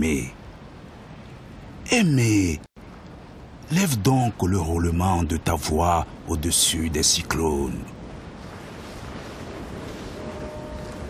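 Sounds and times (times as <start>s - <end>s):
sea surf: 0.0s - 11.0s
wind on microphone: 7.8s - 11.0s.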